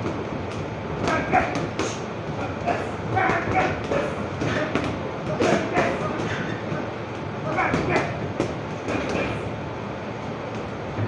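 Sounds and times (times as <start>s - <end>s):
busy gym din: 0.0s - 11.0s
punches thudding on heavy bags: 1.0s - 6.3s.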